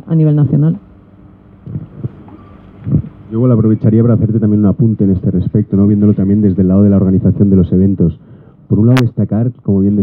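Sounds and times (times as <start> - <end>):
microphone handling thumps: 1.6 - 3.3.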